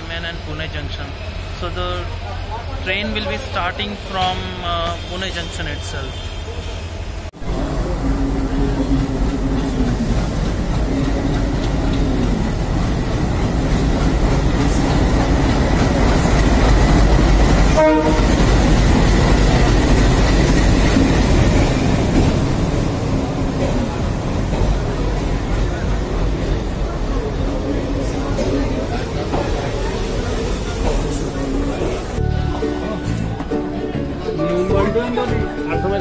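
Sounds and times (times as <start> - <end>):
diesel locomotive engine: 0.0 - 36.0.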